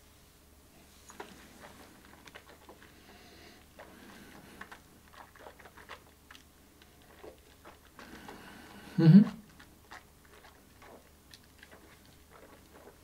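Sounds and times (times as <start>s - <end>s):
wet mouth clicks and smacking: 3.7s - 13.0s.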